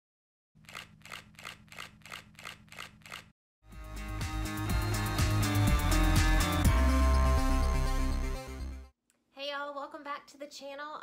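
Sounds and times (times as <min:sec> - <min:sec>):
sharp rhythmic clicks: 0:00.6 - 0:03.3
music: 0:03.6 - 0:08.9.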